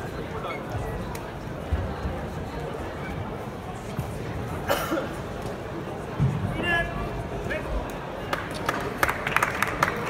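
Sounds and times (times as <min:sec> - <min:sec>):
murmur of sports hall crowd: 0:00.0 - 0:10.0
person coughing: 0:04.7 - 0:05.2.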